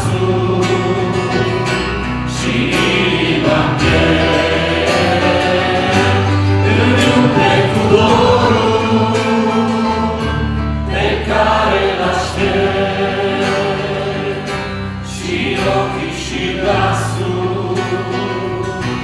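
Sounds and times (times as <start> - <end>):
drums: 0.0 - 19.0
electric bass: 0.0 - 19.0
people singing in harmony: 0.0 - 19.0
strummed acoustic guitar: 0.0 - 19.0.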